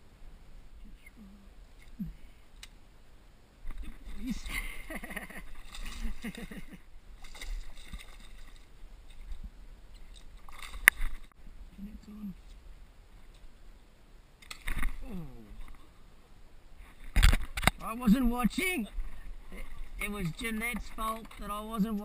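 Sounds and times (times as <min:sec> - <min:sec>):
fish splashing in water: 0:07.2 - 0:08.7.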